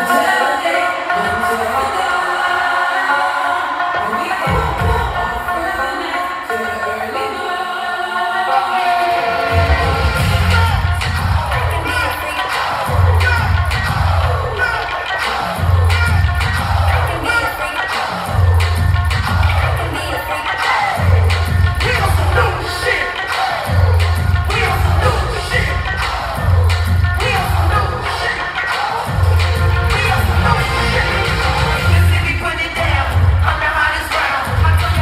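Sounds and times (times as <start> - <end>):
hip-hop music over sound system: 0.0 - 35.0.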